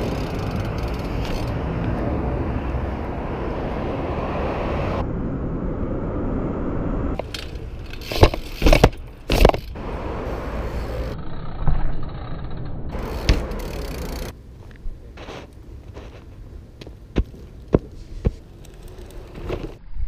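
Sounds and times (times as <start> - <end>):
bike knocking and rattling: 0.0 - 1.6, 7.2 - 9.8, 10.8 - 19.8
street traffic rushing: 0.0 - 11.7, 12.4 - 19.8.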